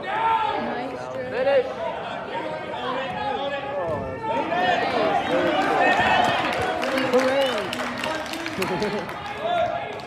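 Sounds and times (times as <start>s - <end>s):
people shouting and cheering: 0.0s - 10.0s.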